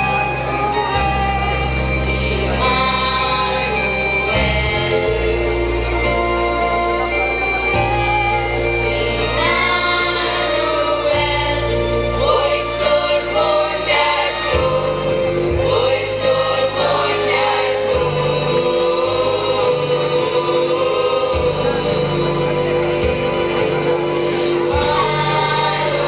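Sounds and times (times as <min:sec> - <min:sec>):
choir singing a carol: 0:00.0 - 0:26.0
instrumental accompaniment: 0:00.0 - 0:26.0.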